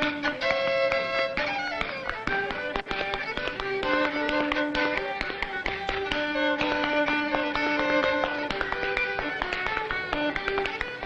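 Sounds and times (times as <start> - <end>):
fiddle playing folk dance tune: 0.0 - 11.0.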